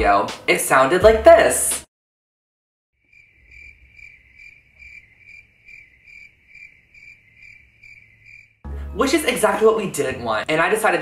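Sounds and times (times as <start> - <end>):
cricket chirping: 3.0 - 8.6.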